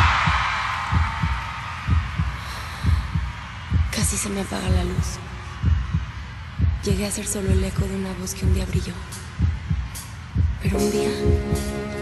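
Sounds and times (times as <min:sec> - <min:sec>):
heartbeat thumps: 0:00.0 - 0:11.8.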